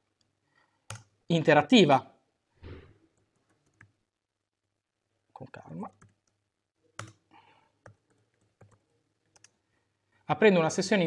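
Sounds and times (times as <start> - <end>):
faint keyboard typing: 0.1 - 1.2, 3.1 - 4.0, 5.7 - 9.7.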